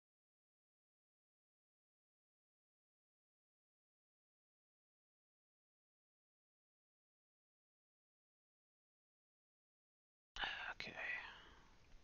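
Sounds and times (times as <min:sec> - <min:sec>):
man whispering: 0:10.4 - 0:11.6.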